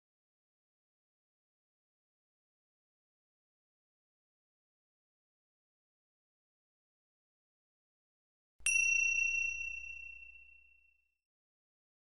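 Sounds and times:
high chime ringing: 8.7s - 10.7s.

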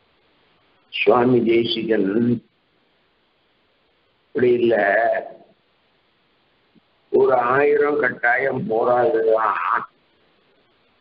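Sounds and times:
man's drawn-out wavering utterance: 9.0s - 9.9s.

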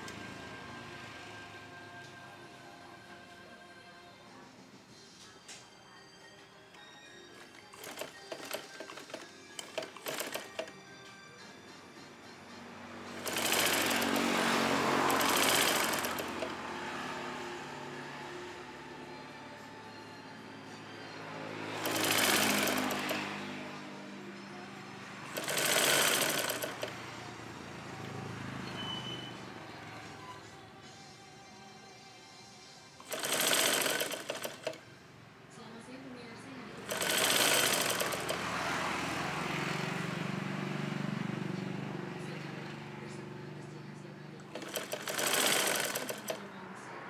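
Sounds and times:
sewing machine stitching: 7.4s - 10.8s, 13.2s - 16.9s, 21.8s - 23.4s, 25.3s - 27.0s, 33.0s - 34.8s, 36.8s - 38.8s, 44.5s - 46.5s.

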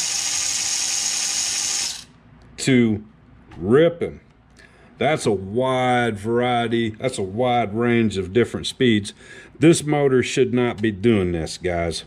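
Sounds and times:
high-pitched electric motor whine: 0.0s - 2.1s.

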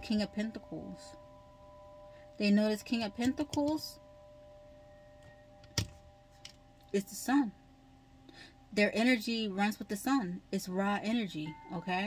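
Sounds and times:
faint electrical whine: 0.0s - 12.0s.

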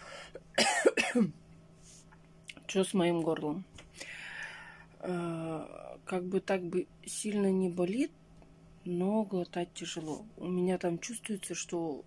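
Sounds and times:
woman breathing: 0.0s - 0.4s, 3.9s - 5.0s
woman coughing: 0.5s - 1.4s.

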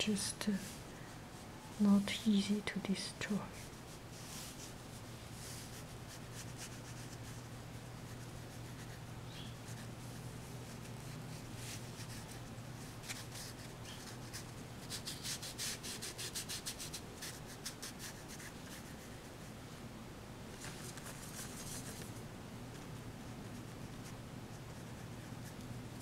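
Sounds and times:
steady low hum: 0.0s - 26.0s
ink brush scrubbing on paper: 3.6s - 9.0s, 9.6s - 19.2s, 20.6s - 22.1s.

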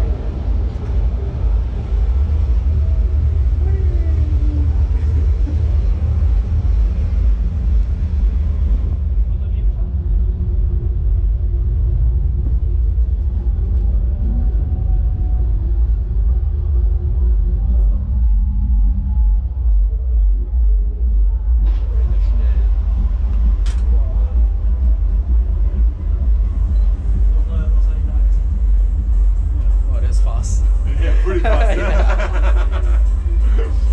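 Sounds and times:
faint indistinct voices: 0.0s - 33.9s
low rumble: 0.0s - 33.9s.

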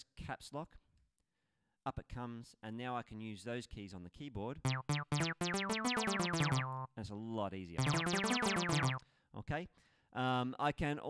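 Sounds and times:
synth bass run of short notes: 4.7s - 6.9s, 7.8s - 9.0s.

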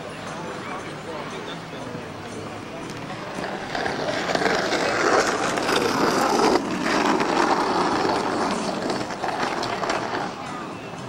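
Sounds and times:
skateboard wheels rolling on asphalt: 0.5s - 11.0s.

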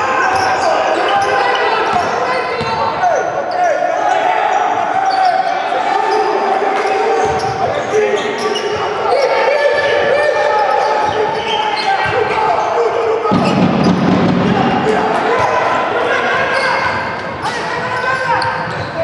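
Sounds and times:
sneakers squeaking: 0.0s - 14.4s, 15.3s - 19.0s
people calling out: 0.0s - 19.0s
basketball bouncing: 13.3s - 14.6s.

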